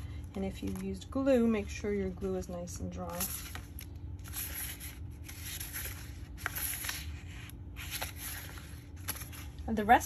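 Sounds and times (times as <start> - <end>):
cardstock rustling: 0.1 - 10.0.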